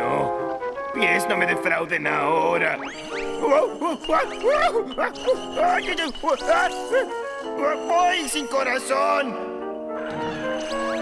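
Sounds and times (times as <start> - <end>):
cartoon background music: 0.0 - 11.0
cartoon character cries: 3.4 - 5.7.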